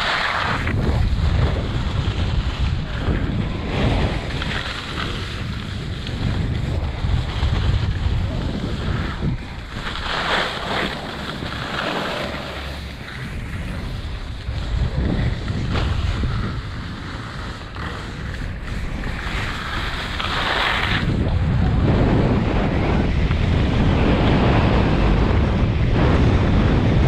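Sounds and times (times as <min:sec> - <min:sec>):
ski edges scraping snow: 0:00.0 - 0:21.2
wind buffeting microphone: 0:00.0 - 0:27.0.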